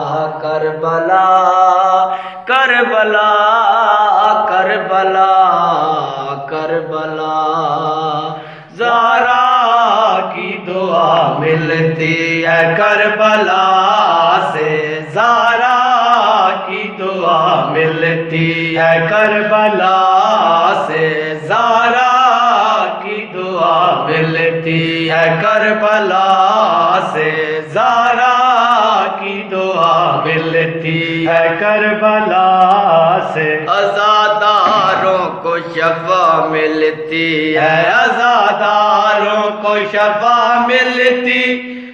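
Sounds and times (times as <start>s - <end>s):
men singing a lament: 0.0s - 41.9s.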